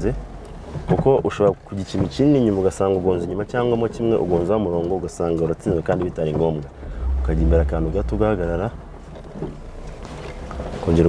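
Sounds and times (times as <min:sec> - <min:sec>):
car engine rumble: 0:05.4 - 0:11.0
man speaking: 0:06.5 - 0:08.8.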